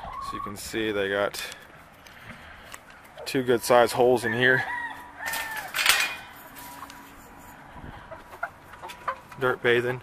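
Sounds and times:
chickens clucking: 0:01.6 - 0:10.0.

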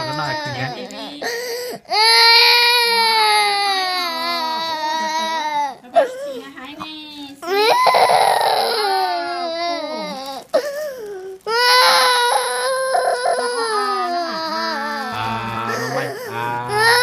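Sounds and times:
child crying: 0:00.0 - 0:06.5, 0:07.4 - 0:17.0.

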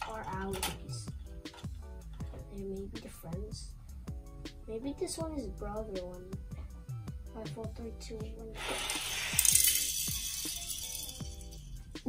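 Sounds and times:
toy cars rattling on plastic track: 0:08.6 - 0:11.7.

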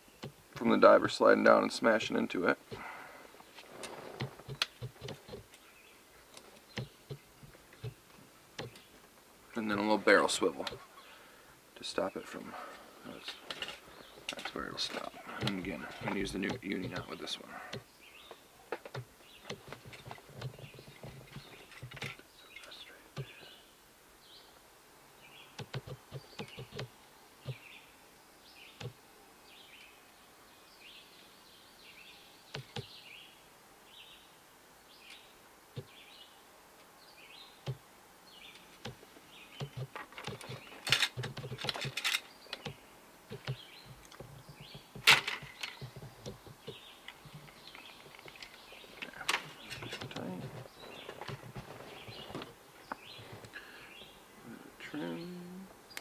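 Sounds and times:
birds chirping: 0:00.0 - 0:56.0
handling clicks and knocks: 0:03.8 - 0:05.6, 0:06.3 - 0:09.0, 0:13.2 - 0:23.6, 0:25.6 - 0:27.6, 0:38.5 - 0:53.6.

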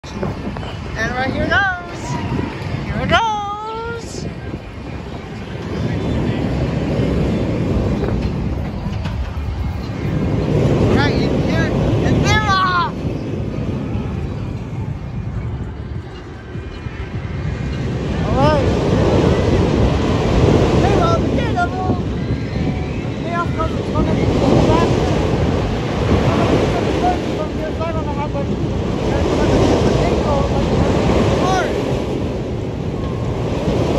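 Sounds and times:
roller coaster rolling roar: 0:00.0 - 0:33.9.

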